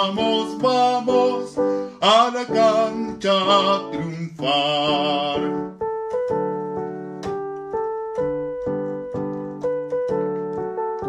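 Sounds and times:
keyboard chords: 0.0 - 11.0.

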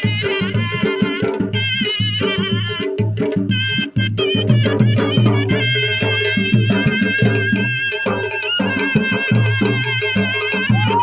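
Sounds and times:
drums beating fast rhythm: 0.0 - 11.0.

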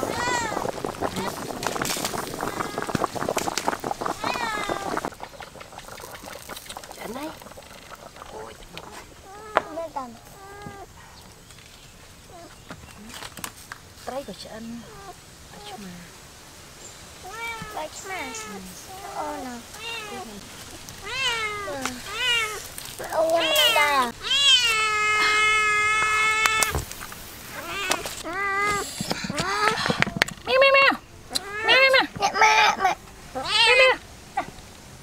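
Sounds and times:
cat meowing: 21.0 - 26.8.

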